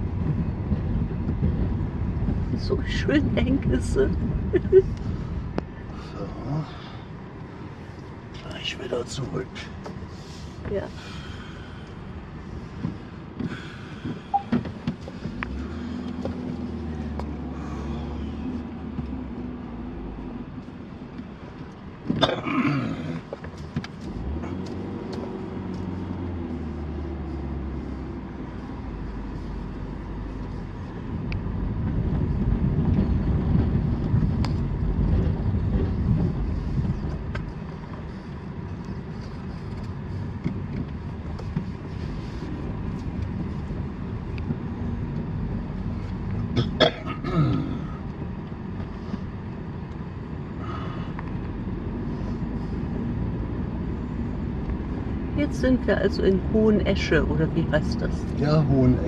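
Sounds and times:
car engine and tyre noise: 0.0s - 59.0s
person laughing: 4.5s - 4.9s.

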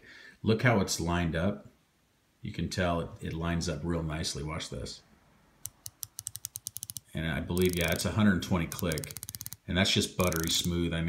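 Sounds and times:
watch bezel ratchet clicking: 5.6s - 8.1s, 8.7s - 9.6s, 10.2s - 10.8s.

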